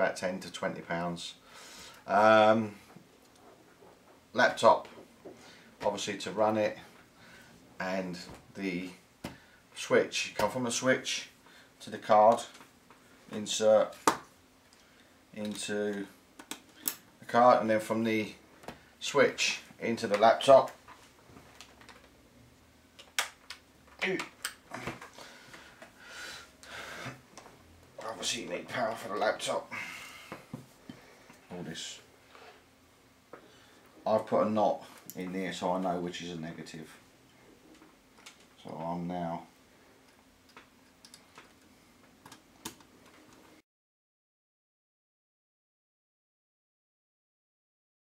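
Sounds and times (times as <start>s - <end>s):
cable clicks: 40.0s - 43.4s.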